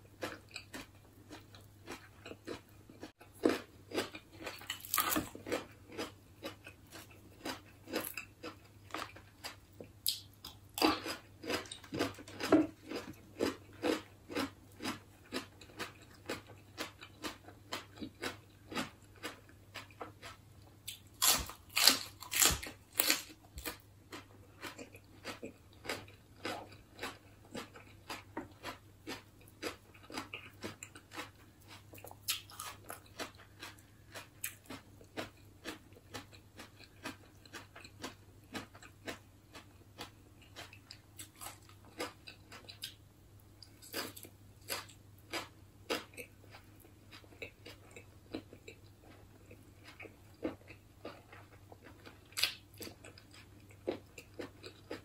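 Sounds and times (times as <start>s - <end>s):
crunchy chewing: 0.0s - 43.0s, 43.6s - 55.0s.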